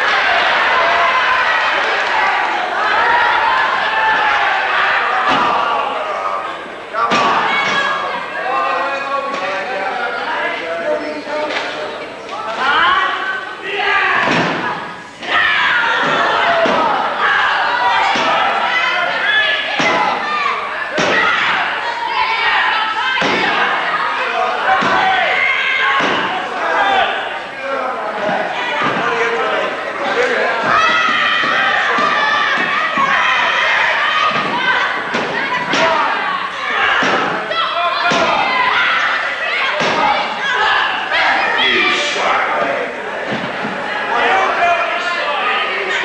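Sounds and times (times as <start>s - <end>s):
voices shouting: 0.0s - 46.0s.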